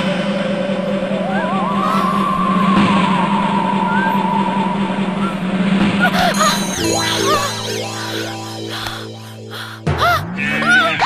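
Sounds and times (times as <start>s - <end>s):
wavering high tone: 0.0s - 9.9s
steady low drone: 0.0s - 11.0s.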